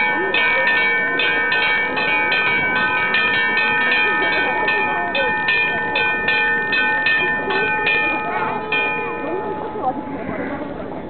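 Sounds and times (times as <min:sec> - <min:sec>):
bell ringing: 0:00.0 - 0:10.6.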